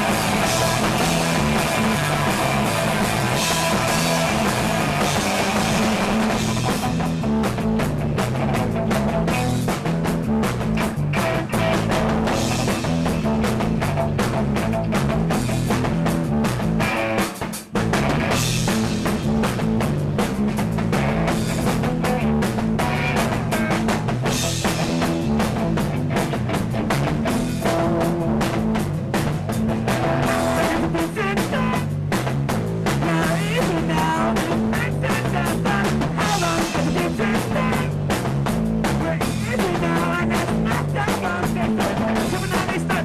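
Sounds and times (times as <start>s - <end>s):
live rock band: 0.0s - 43.0s.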